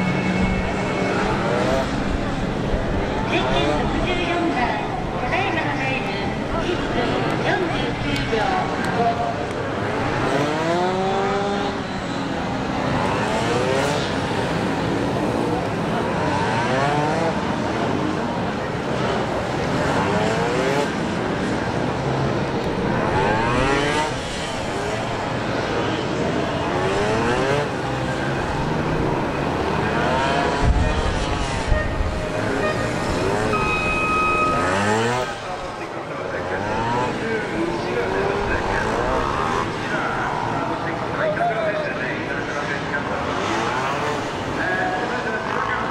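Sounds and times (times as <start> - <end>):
motorcycle engine revving: 9.8 - 39.8.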